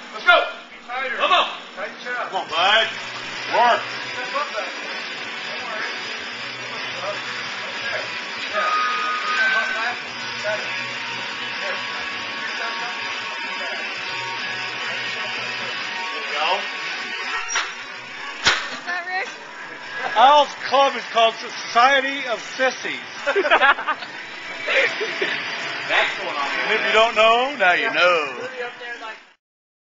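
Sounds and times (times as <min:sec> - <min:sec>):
noisy background: 0:00.0 - 0:29.4
music: 0:05.7 - 0:21.9.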